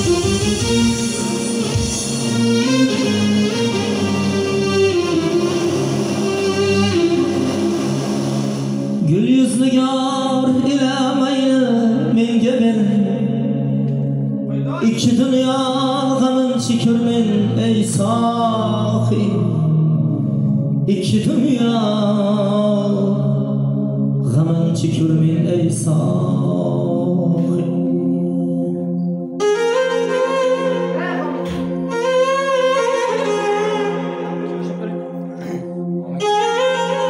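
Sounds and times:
keyboard sustaining chords: 0:00.0 - 0:37.0
man singing into microphone: 0:09.0 - 0:14.0, 0:14.6 - 0:30.0.

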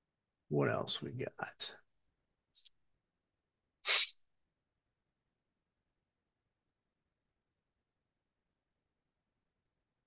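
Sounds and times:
person sneezing: 0:03.8 - 0:04.2.

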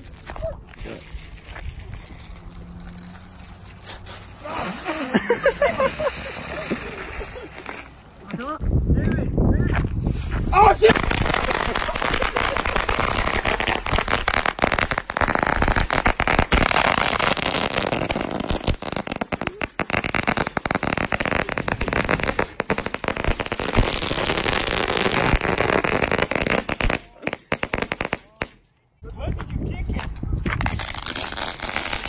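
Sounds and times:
firecrackers cracking: 0:00.0 - 0:08.3, 0:10.4 - 0:28.6, 0:30.6 - 0:32.0.

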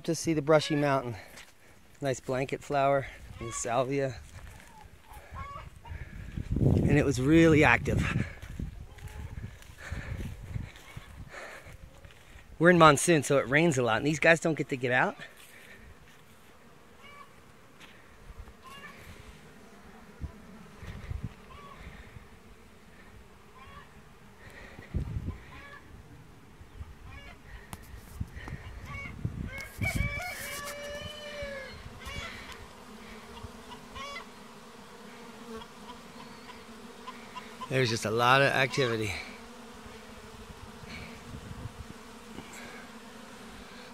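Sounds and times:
bees buzzing: 0:00.0 - 0:43.9
bird calling: 0:21.5 - 0:21.8, 0:23.6 - 0:23.9, 0:33.3 - 0:34.4, 0:35.6 - 0:39.1.

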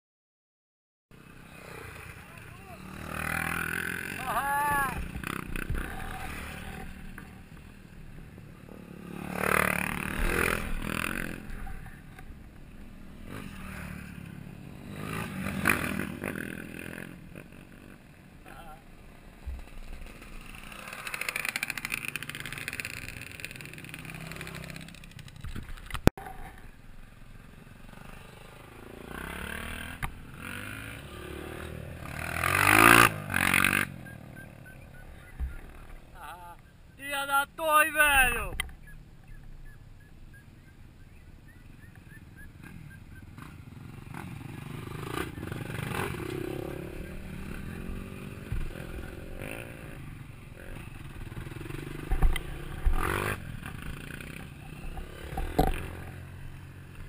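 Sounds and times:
dirt bikes riding past: 0:01.1 - 0:57.0.

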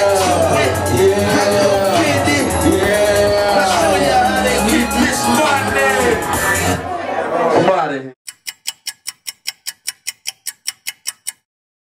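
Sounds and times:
rapping over a backing track: 0:00.0 - 0:06.8
sharp ticking sound effect: 0:08.3 - 0:11.5.

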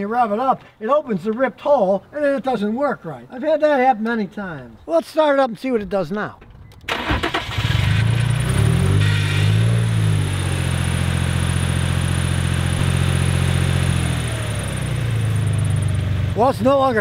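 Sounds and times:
car engine starting and idling: 0:06.6 - 0:17.0.

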